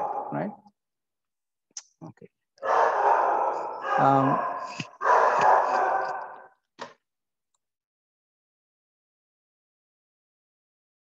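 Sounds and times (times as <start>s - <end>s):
mouth clicks: 1.7s - 2.0s.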